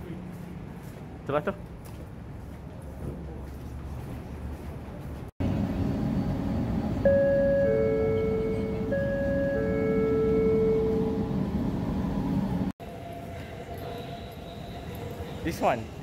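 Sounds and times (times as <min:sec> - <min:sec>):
outdoor walkway noise: 0:00.0 - 0:07.1, 0:08.4 - 0:16.0
train low rumble: 0:00.0 - 0:16.0
two-note chime: 0:07.1 - 0:11.2.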